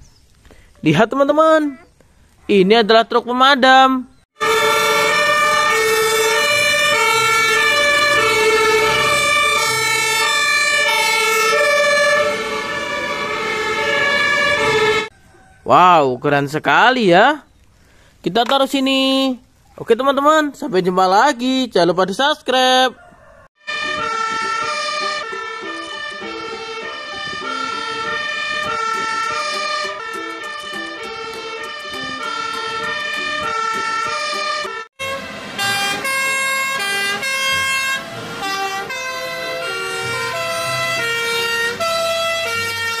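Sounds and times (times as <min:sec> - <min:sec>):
two-tone fire engine sirens: 0:04.4 - 0:15.1, 0:23.2 - 0:43.0
truck engine running: 0:23.7 - 0:41.8.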